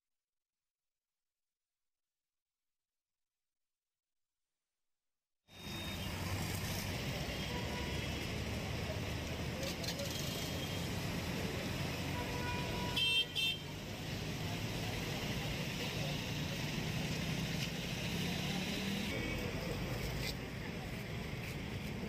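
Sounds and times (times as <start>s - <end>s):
road traffic noise: 5.5s - 22.0s
vehicle horn toots: 12.1s - 13.7s.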